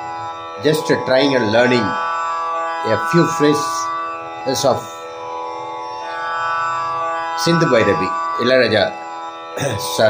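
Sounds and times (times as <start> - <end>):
indian classical drone: 0.0 - 10.0.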